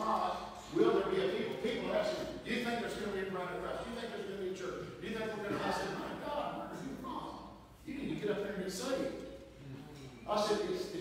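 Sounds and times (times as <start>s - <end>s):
man preaching: 0.0s - 9.4s, 10.2s - 11.0s.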